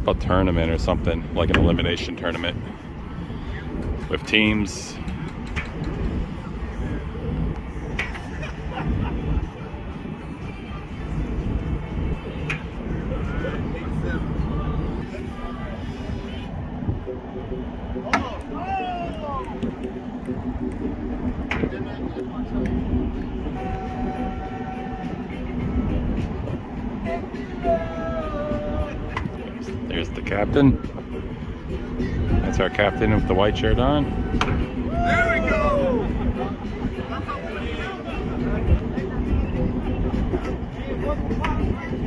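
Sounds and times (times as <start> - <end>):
distant voices talking: 0.0 - 42.0
low rumble of wind: 0.0 - 42.0.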